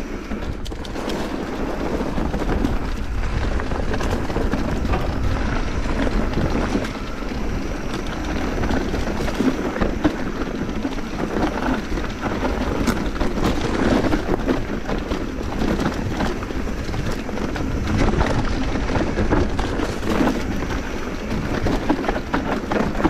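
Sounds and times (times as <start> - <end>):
bike rattling and knocking: 0.0 - 23.0
bike tyres rolling over dirt: 0.0 - 23.0
wind on microphone: 0.0 - 23.0.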